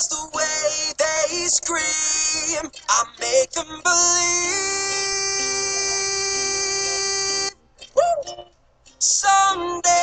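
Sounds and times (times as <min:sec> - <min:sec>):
bending vocal sound: 0:00.0 - 0:08.4, 0:09.0 - 0:10.0.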